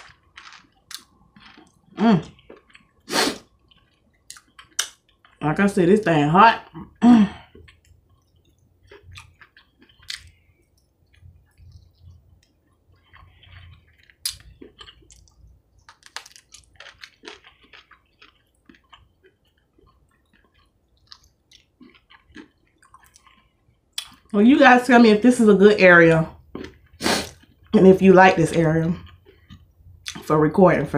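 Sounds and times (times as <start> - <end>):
person chewing crunchy food: 0.0 - 5.4, 6.6 - 24.3, 26.4 - 27.8, 28.9 - 30.2.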